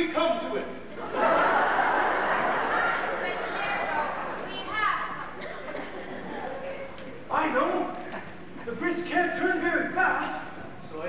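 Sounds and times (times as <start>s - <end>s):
theatre audience crowd noise: 0.0s - 11.0s.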